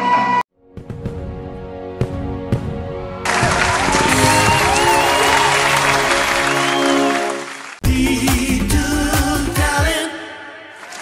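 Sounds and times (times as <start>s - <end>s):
background music: 0.1s - 11.0s
applause and cheering: 3.2s - 7.8s, 10.8s - 11.0s.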